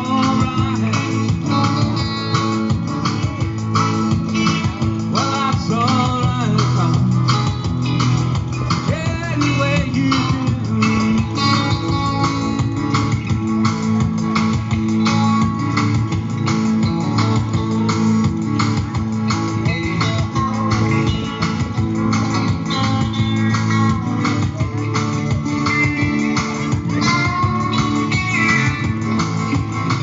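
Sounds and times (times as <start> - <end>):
strummed guitars: 0.0 - 30.0.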